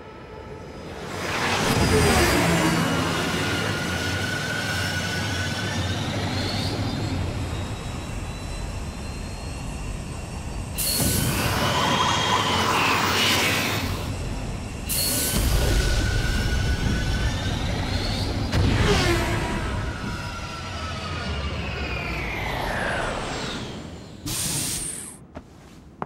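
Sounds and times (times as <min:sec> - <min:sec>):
jet-like race engine rushing: 0:00.4 - 0:25.2.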